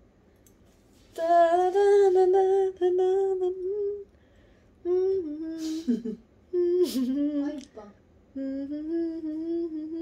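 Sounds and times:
person humming: 1.2s - 4.1s, 4.8s - 7.7s, 8.3s - 10.0s.

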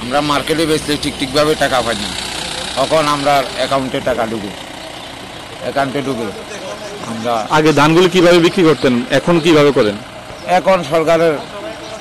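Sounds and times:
man speaking: 0.0s - 4.6s
truck engine running: 0.0s - 12.0s.

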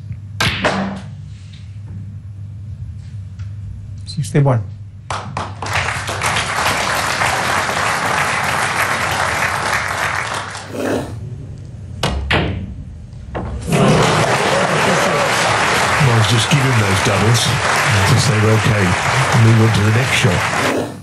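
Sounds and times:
audience applauding: 5.1s - 11.2s, 13.6s - 21.0s.

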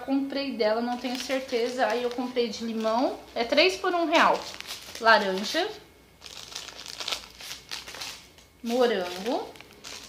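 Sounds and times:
plastic sachets crinkling: 0.9s - 10.0s.

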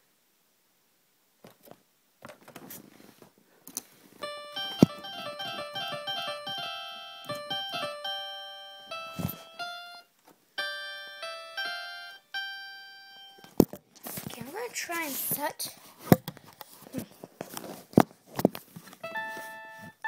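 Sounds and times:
electric piano notes: 4.2s - 13.6s, 19.0s - 20.0s.

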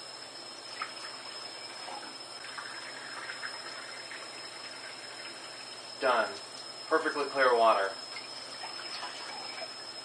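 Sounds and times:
faucet running into sink: 0.7s - 6.5s, 8.1s - 9.8s.

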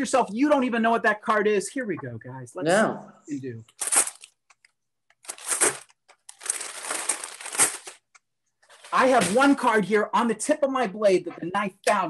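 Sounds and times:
paper bag crumpling: 3.8s - 4.4s, 5.2s - 8.0s.

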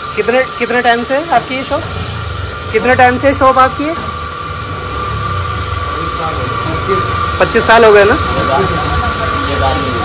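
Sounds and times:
mechanical hum: 0.0s - 10.0s
thin high whine: 0.0s - 10.0s.

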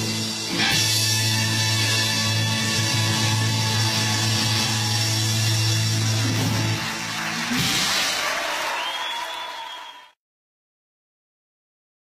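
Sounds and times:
rock band holding closing chord: 0.0s - 8.6s
audience applause: 1.3s - 10.2s.

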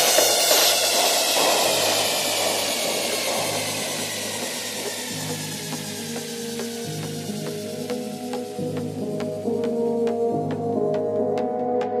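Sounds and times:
falling synth sweep: 0.0s - 10.6s
low held tone: 0.0s - 11.0s.

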